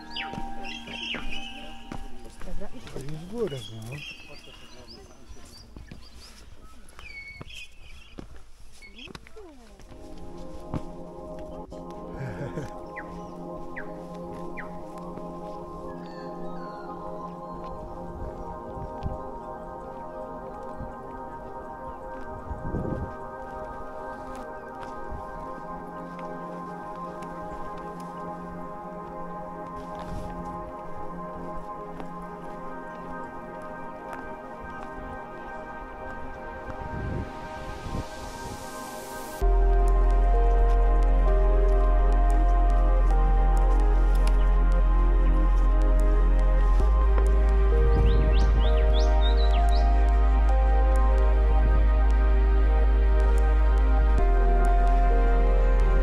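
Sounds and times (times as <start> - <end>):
background music sustained chords: 0.0 - 6.8, 9.4 - 56.0.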